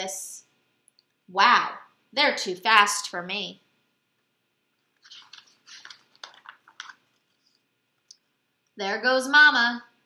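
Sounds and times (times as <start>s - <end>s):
paper page turning and rustling: 4.8s - 7.7s.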